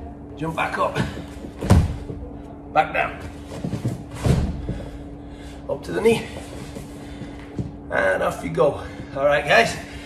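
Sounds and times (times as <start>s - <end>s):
body thudding on foam mats: 1.5s - 2.2s, 3.5s - 4.9s.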